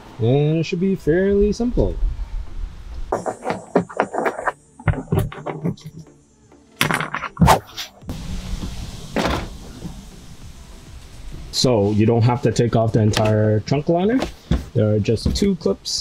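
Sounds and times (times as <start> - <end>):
background music: 3.1 - 15.6.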